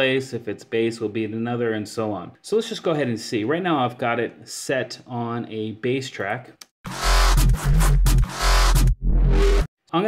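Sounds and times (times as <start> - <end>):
music with heavy sub-bass: 6.9 - 9.7.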